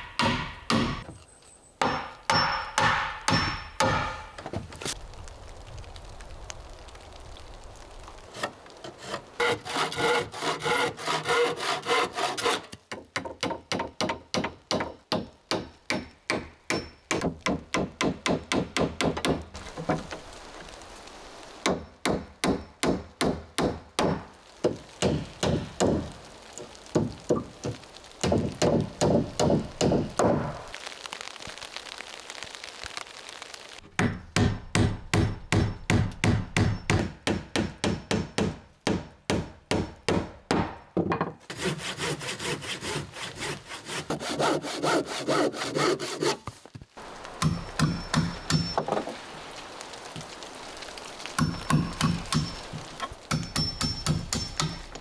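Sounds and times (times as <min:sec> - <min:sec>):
hand saw cutting wood: 0:08.4 - 0:12.8, 0:41.5 - 0:46.6.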